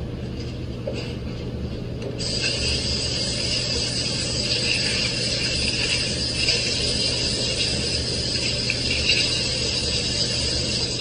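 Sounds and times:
faucet water running into sink: 2.2s - 11.0s.

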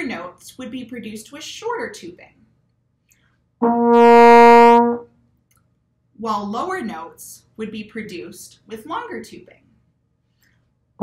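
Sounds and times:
trombone held note: 3.6s - 5.0s.

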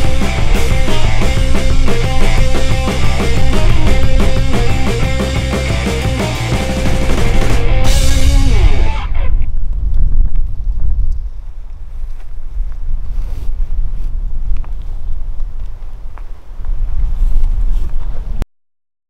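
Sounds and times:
wind buffeting microphone: 7.8s - 18.4s.

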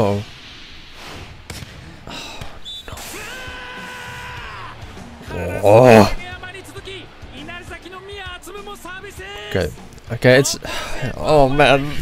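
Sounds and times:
volleyball hits: 1.4s - 3.0s.

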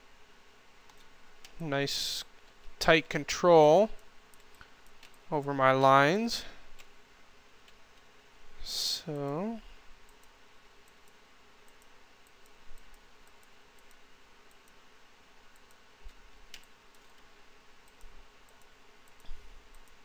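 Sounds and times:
computer mouse clicking: 0.9s - 1.6s, 4.3s - 5.2s, 10.0s - 14.8s, 15.5s - 20.0s.

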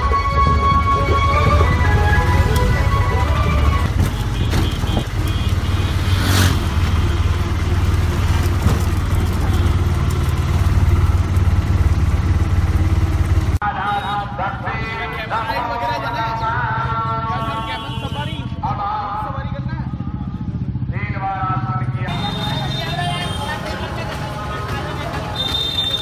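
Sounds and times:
road noise: 0.0s - 26.0s
small vehicle engine running: 0.4s - 13.6s
man singing with music: 13.6s - 19.7s, 20.9s - 22.4s.

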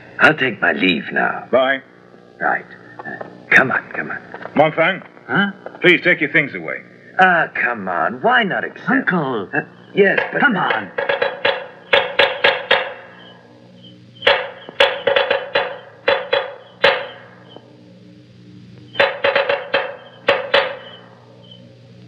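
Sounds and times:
steady low hum: 0.0s - 22.0s
sharp clacking percussion strikes: 9.0s - 17.7s, 18.9s - 21.6s.

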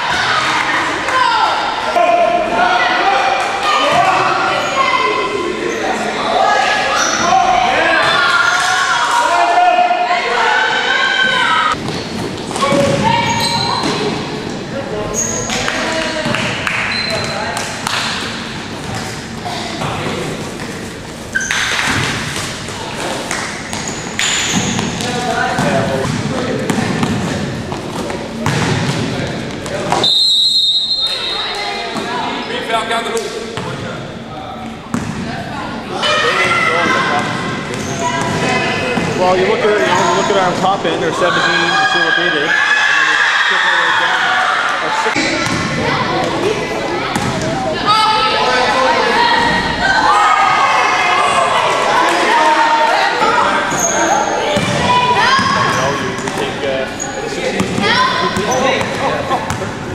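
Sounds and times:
voices echoing in gym: 0.0s - 59.9s.

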